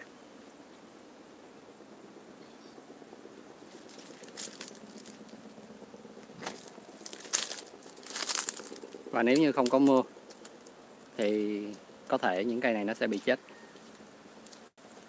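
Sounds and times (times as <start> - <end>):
rustling and crinkling crackles: 3.6 - 5.6, 6.2 - 11.3, 13.1 - 15.0.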